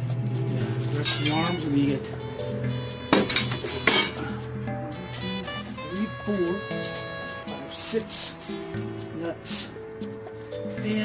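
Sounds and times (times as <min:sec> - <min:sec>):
background music: 0:00.0 - 0:11.0
metal parts clinking: 0:01.0 - 0:01.6, 0:03.2 - 0:04.3.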